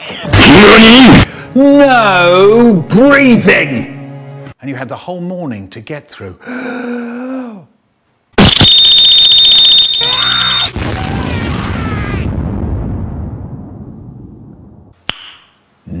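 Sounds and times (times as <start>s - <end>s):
cartoon explosion: 8.4s - 14.4s.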